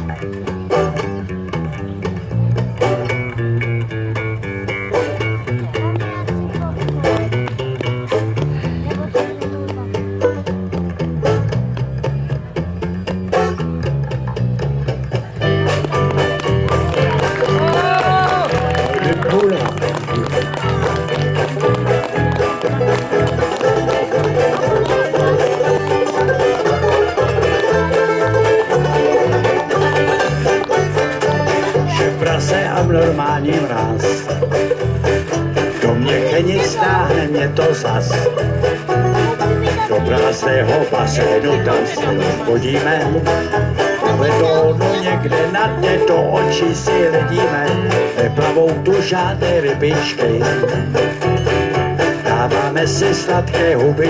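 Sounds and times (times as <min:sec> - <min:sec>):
banjo: 0:00.0 - 0:54.0
bass guitar: 0:00.0 - 0:54.0
guitars: 0:00.0 - 0:54.0.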